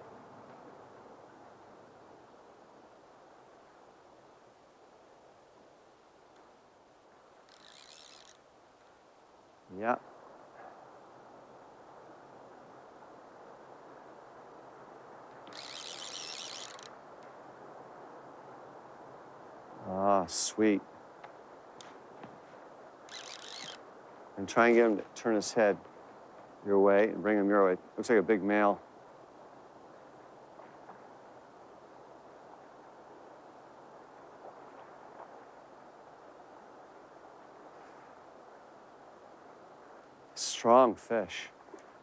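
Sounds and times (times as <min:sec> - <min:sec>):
river current rushing: 0:06.6 - 0:10.0, 0:15.0 - 0:20.8, 0:21.5 - 0:26.9.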